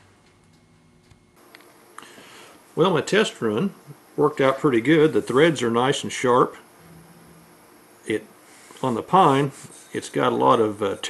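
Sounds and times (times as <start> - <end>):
low steady hum: 0.0 - 9.4
faint high steady tone: 6.8 - 8.1.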